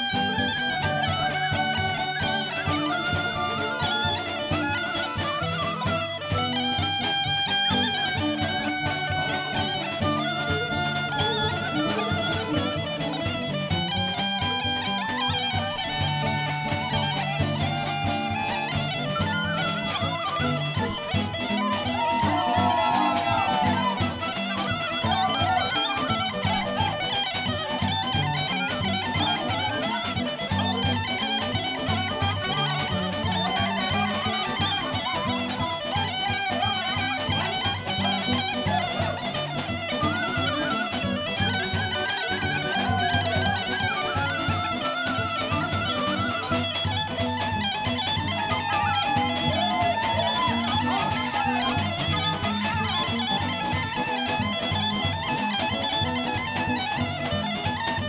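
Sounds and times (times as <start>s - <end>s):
bagpipe melody: 0.0s - 58.0s
clarinet: 0.0s - 58.0s
plucked lute: 0.0s - 58.0s
drum beat: 21.6s - 24.0s.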